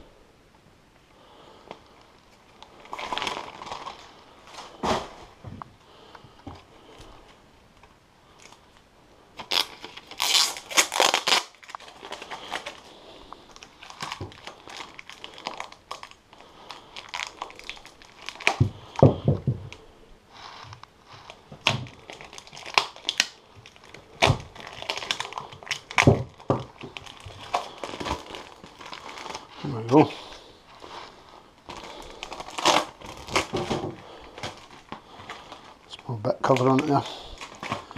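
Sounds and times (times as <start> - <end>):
plastic wrapping crinkling and tearing: 1.7 - 5.4, 6.6 - 8.8, 9.4 - 37.9.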